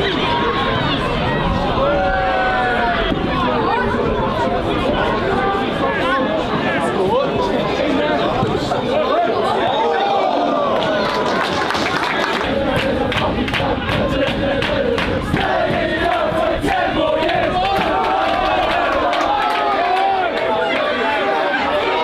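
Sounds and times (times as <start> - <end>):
crowd shouting and chanting: 0.0 - 22.0
sharp claps or knocks: 11.7 - 18.5.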